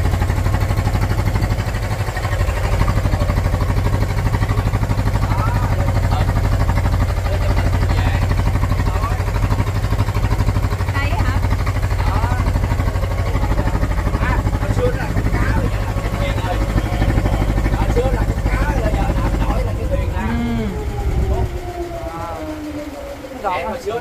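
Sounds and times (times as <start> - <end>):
boat engine running: 0.0 - 24.0
faint voices: 0.7 - 24.0.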